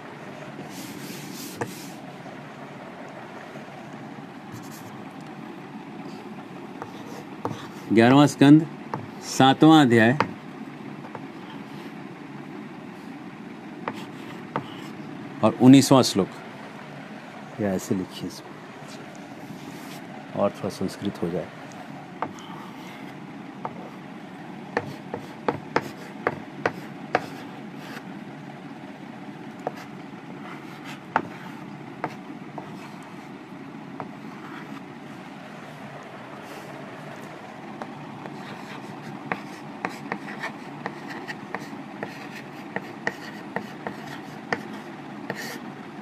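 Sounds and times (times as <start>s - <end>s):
chalk on blackboard: 0.7s - 2.0s, 30.5s - 33.2s
chalk tapping on chalkboard: 1.2s - 1.9s, 13.8s - 14.8s, 24.8s - 27.4s, 30.9s - 31.4s, 32.0s - 32.8s, 37.8s - 44.7s.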